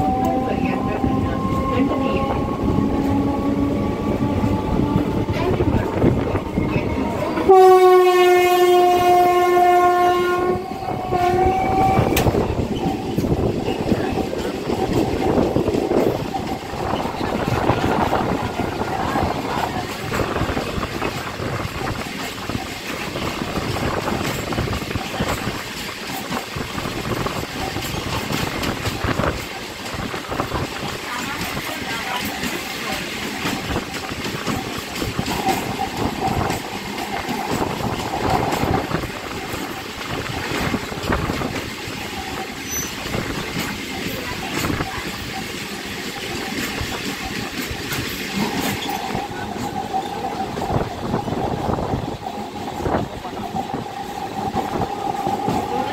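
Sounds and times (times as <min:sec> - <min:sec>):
train rushing past: 0:00.0 - 0:55.9
wheels clicking over rail joints: 0:11.0 - 0:55.9.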